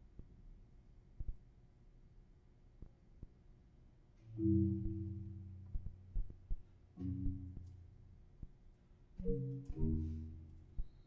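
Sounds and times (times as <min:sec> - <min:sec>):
soft low thuds: 0:04.4 - 0:07.8.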